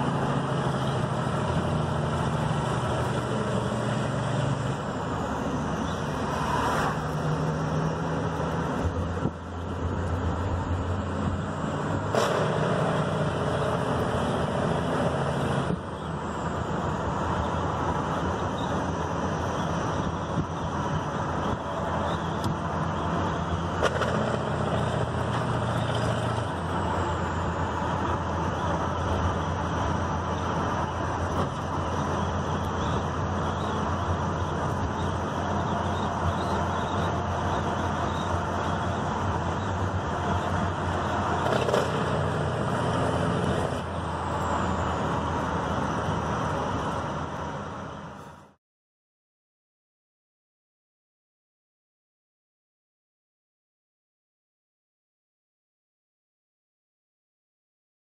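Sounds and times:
car road and engine noise: 0.0s - 48.6s.

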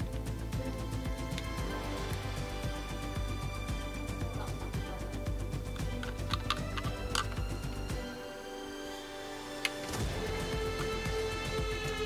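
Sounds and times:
background music: 0.0s - 12.0s
plastic pieces clicking together: 5.8s - 7.5s.

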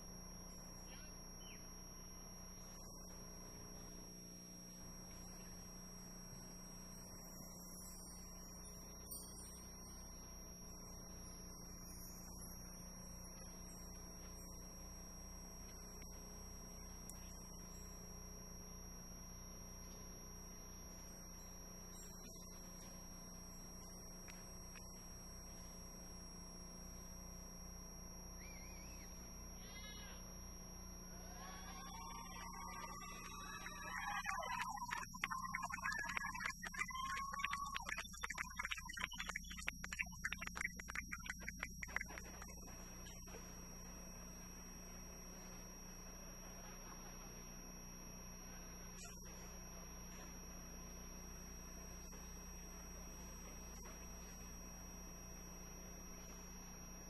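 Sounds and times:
faint background ambience: 0.0s - 57.0s
steady electrical hum: 0.0s - 57.0s.

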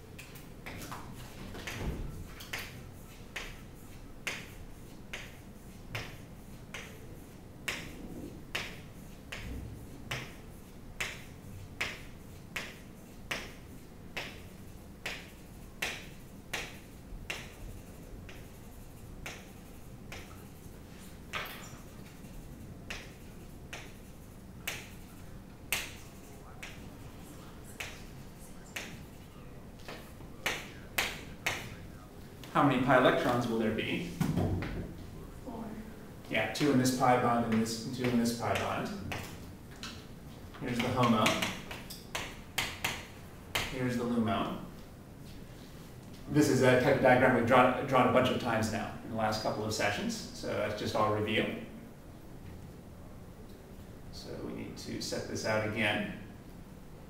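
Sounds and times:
faint low hum: 0.0s - 57.0s
chalk tapping on chalkboard: 0.6s - 31.8s, 37.4s - 39.4s, 40.7s - 43.8s
chalk knocking on chalkboard: 1.6s - 7.0s.

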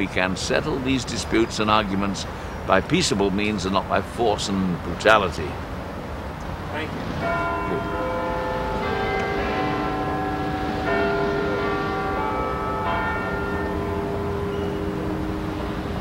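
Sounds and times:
large tower bells ringing: 6.8s - 16.0s.

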